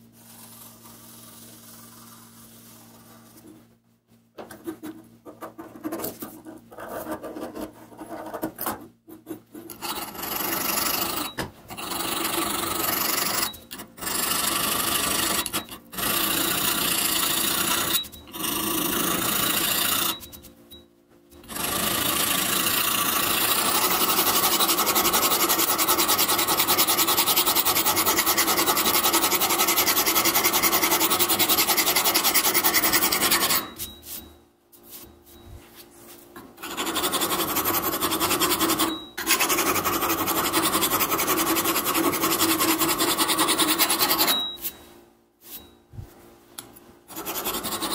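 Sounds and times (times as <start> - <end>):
hand file rasping on steel: 21.4 - 33.8, 36.6 - 44.4, 47.1 - 47.9.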